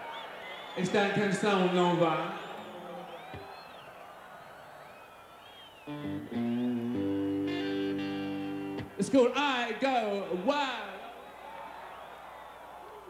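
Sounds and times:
faint whistles: 0.0s - 0.9s, 2.3s - 6.2s
electric guitar strummed chords: 5.9s - 9.0s.

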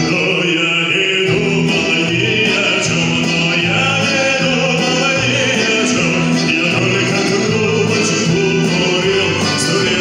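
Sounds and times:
choir singing: 0.0s - 10.0s
instrumental backing: 0.0s - 10.0s
man singing into a microphone: 0.0s - 10.0s.

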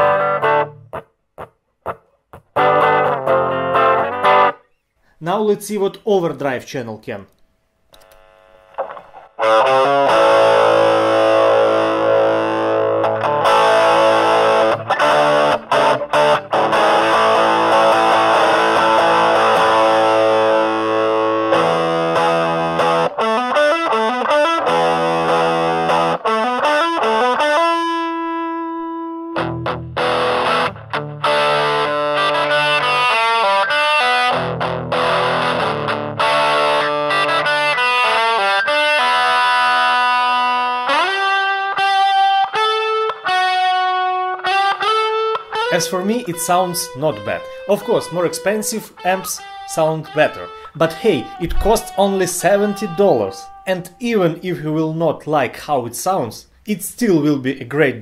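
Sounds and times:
distorted electric guitar: 0.0s - 4.8s, 8.0s - 54.4s.

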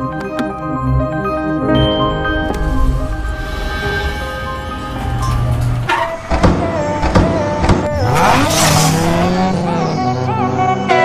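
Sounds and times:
background music: 0.0s - 11.0s
rush of noise: 2.4s - 6.5s
car engine revving: 2.5s - 11.0s.

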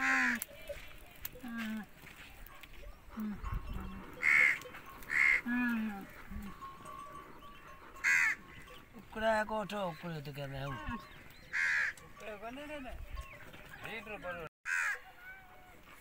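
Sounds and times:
crows cawing: 0.0s - 0.5s, 4.0s - 6.4s, 7.8s - 8.8s, 10.8s - 12.1s, 14.6s - 15.1s.

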